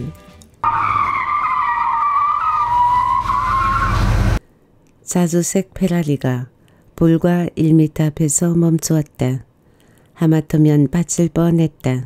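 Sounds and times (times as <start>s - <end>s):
car tyres screeching: 0.6s - 4.4s.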